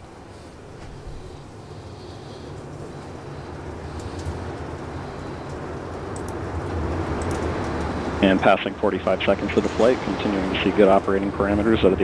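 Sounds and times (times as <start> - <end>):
rocket engine rumble: 0.0 - 12.0.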